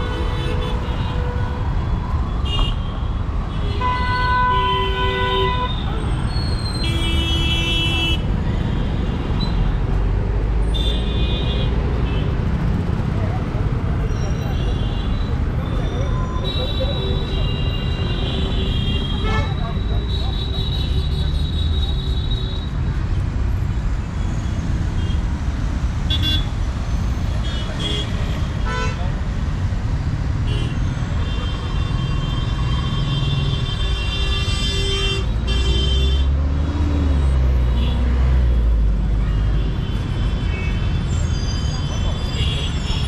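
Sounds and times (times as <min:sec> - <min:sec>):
traffic rumble: 0:00.0 - 0:43.0.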